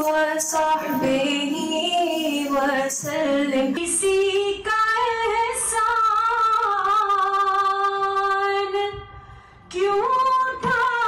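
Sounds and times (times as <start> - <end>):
woman singing unaccompanied: 0.0 - 8.9, 9.7 - 11.0.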